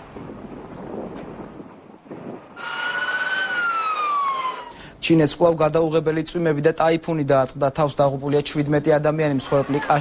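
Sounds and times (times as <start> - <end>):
police siren wailing: 2.6 - 4.8.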